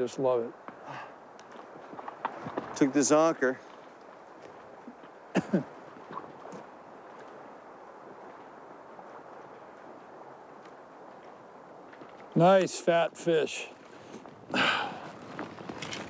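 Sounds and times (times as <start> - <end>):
river flowing over gravel: 0.0 - 16.0.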